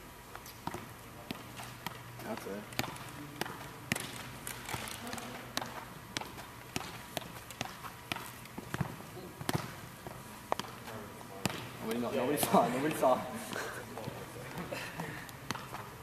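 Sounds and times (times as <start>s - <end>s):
football taps: 0.4s - 12.1s, 12.8s - 16.0s.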